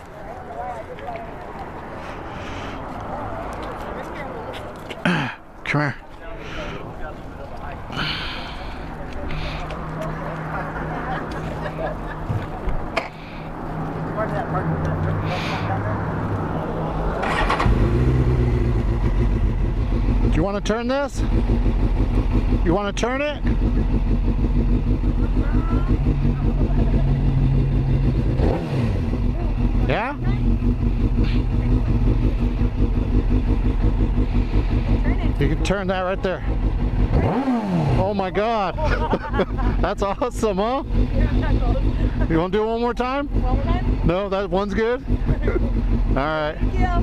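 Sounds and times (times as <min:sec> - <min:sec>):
motorcycle idling: 0:17.2 - 0:47.0.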